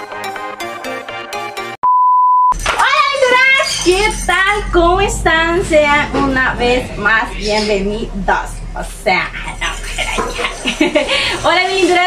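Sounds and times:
woman speaking: 2.8 - 9.9, 11.1 - 12.0.

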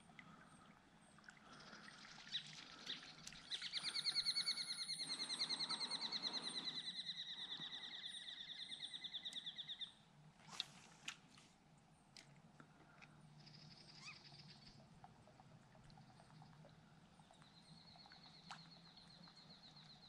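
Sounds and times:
bird trilling: 3.5 - 7.4, 14.0 - 14.3.

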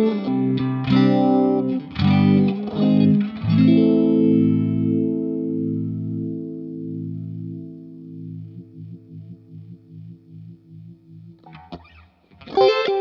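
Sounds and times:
electric guitar chord throbbing: 0.0 - 13.0.

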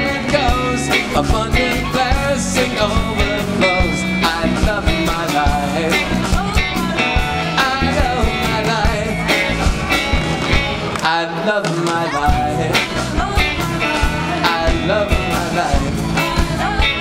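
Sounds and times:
bass guitar: 0.0 - 17.0
drums: 0.0 - 17.0
electric guitar: 0.0 - 17.0.

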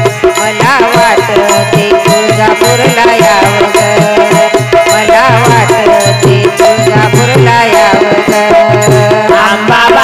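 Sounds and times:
hand drum beat: 0.0 - 10.0
small hand percussion: 0.0 - 10.0.

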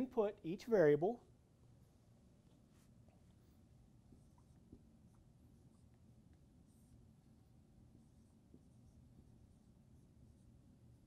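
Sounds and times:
marker scratching on whiteboard: 2.6 - 11.0.

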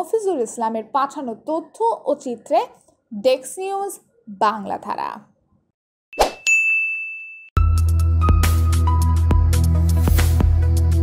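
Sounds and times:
bright ding: 6.2 - 7.6.

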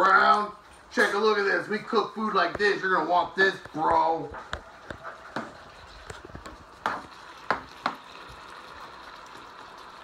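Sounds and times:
meat and onions sizzling: 0.0 - 10.0.

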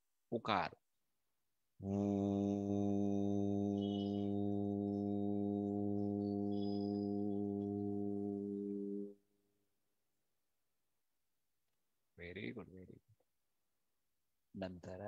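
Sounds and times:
man chanting low tone: 1.8 - 9.1.

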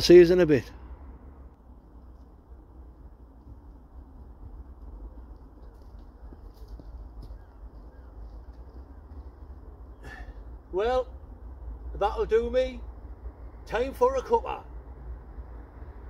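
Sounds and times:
low outdoor rumble: 0.0 - 16.0
light footsteps on path: 1.6 - 10.7
faint bird chirps: 5.6 - 10.4.

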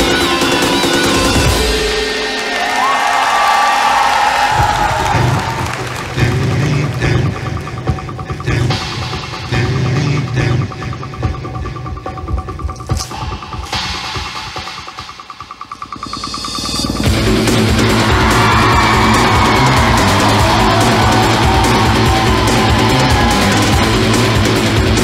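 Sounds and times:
heavy rock music: 0.0 - 3.1, 3.9 - 25.0
pulsing build-up music: 4.0 - 25.0.

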